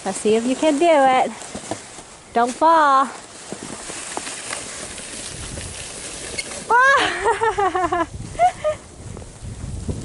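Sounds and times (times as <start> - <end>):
snow crunching: 0.0 - 8.5
plastic sled sliding over snow: 0.0 - 10.0
child crying out: 6.7 - 7.2.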